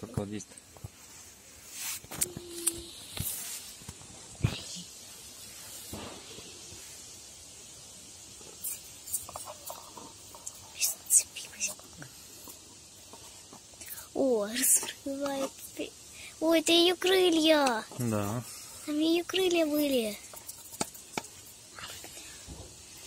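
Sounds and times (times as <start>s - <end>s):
whispered voices: 4.4s - 4.9s.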